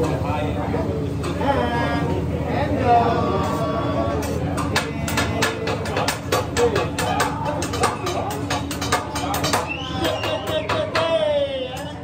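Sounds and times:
murmur of background chatter: 0.0s - 12.0s.

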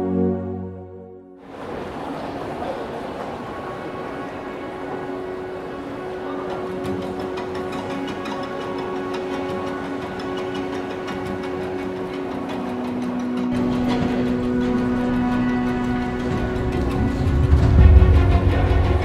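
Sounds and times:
soft background music with drone: 0.0s - 1.4s, 4.0s - 19.0s.

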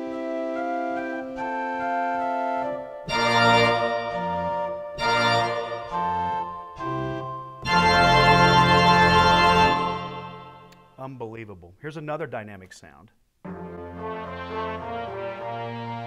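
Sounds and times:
digital piano organ chords: 0.0s - 10.8s.

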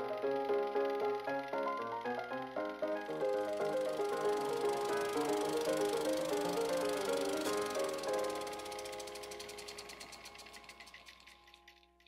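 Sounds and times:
held musical tones: 0.0s - 12.0s
rapid mechanical clicking: 0.0s - 12.0s.

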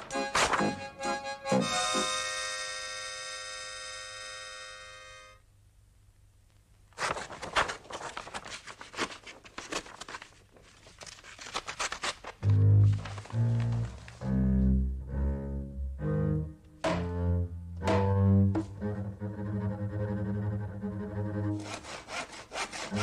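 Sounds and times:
held musical chord: 0.8s - 5.4s
paper cracking and tearing: 6.9s - 14.2s
deep bass music notes: 12.4s - 21.6s.

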